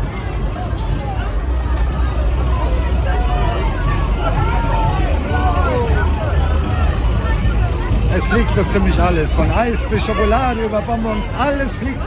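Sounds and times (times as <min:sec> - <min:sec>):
crowd chatter: 0:00.0 - 0:12.0
people calling out: 0:00.0 - 0:12.0
tractor diesel engine rumbling: 0:00.0 - 0:12.0.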